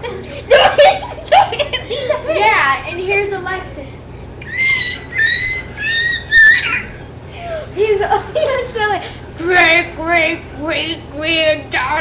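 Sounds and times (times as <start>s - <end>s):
girl squealing: 4.4s - 7.1s.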